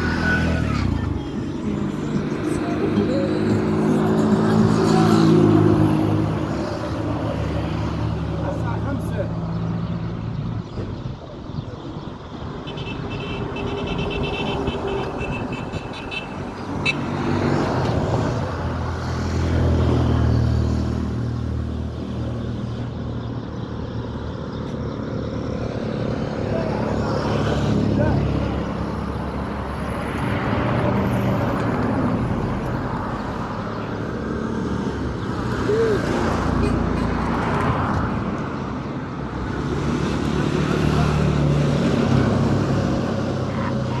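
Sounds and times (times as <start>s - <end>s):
voices: 0.0s - 6.5s, 8.1s - 9.4s, 26.2s - 28.8s, 35.5s - 37.6s, 43.3s - 44.0s
traffic rumbling: 0.0s - 44.0s.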